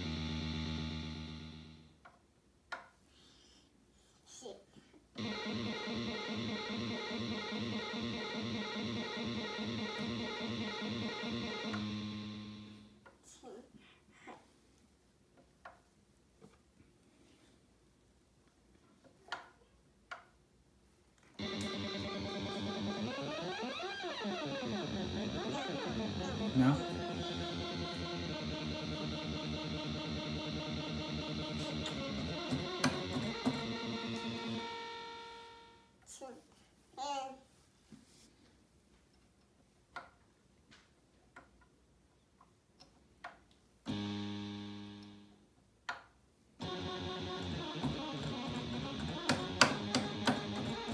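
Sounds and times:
synthesizer sustained tone: 0:00.0 - 0:01.9, 0:05.2 - 0:12.9, 0:21.4 - 0:35.8, 0:46.6 - 0:50.9.

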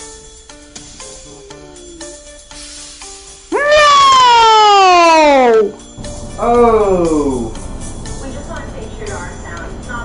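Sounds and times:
tones sliding downward in pitch: 0:04.4 - 0:05.8.

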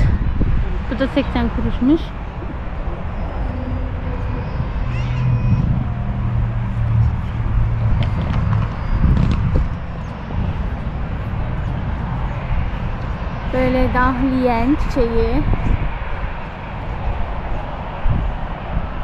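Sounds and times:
deep hum: 0:00.0 - 0:14.1
steady low rumble: 0:00.0 - 0:19.0.

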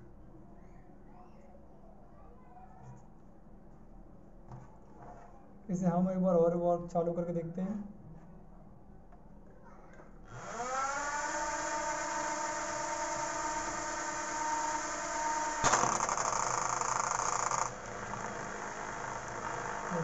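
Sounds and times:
rough buzz: 0:10.3 - 0:20.0
small drone motors whining: 0:10.3 - 0:20.0.

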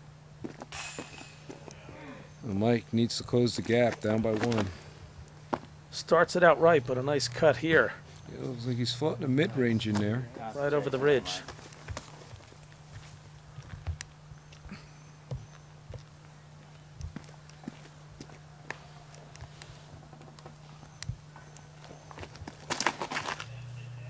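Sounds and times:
steady low hum: 0:00.0 - 0:24.0
footsteps on dirt path: 0:03.5 - 0:04.8, 0:09.5 - 0:23.7.

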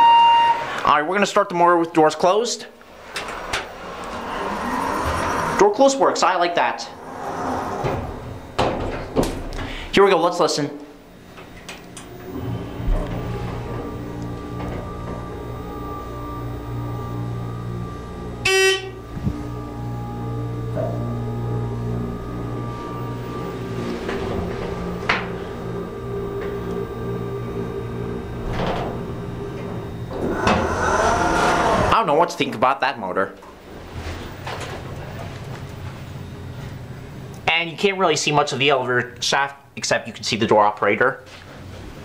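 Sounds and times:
short beep: 0:00.0 - 0:00.8, 0:18.4 - 0:19.0
elevator pump motor humming: 0:00.0 - 0:32.6
elevator doors sliding open: 0:02.3 - 0:10.0, 0:11.0 - 0:32.2.

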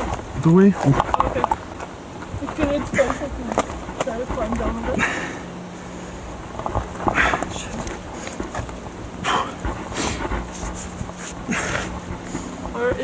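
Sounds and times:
wind rumble on microphone: 0:00.0 - 0:05.2, 0:05.8 - 0:13.0
person breathing hard: 0:04.9 - 0:06.1, 0:07.0 - 0:08.4, 0:09.2 - 0:12.6.

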